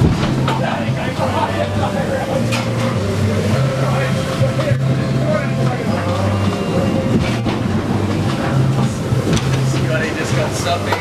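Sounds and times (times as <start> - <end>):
gale-force wind: 0.0 - 10.6
sea: 0.0 - 11.0.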